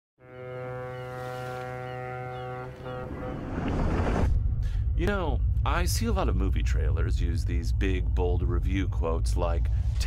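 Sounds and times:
deep foghorn note: 0.2s - 4.9s.

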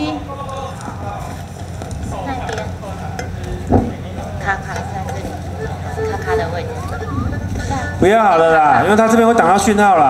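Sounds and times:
faint voices: 0.0s - 9.7s.

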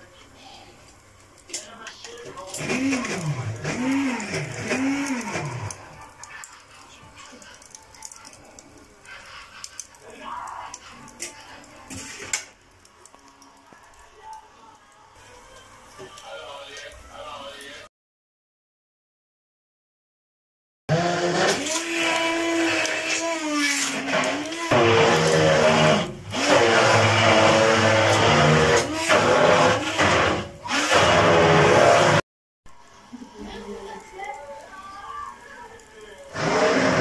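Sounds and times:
charcoal crackling and popping: 0.0s - 17.8s, 21.3s - 31.7s, 32.7s - 37.0s
gas burner hiss: 0.0s - 17.8s, 21.1s - 32.1s, 32.8s - 37.0s
small motor whining: 36.3s - 37.0s.

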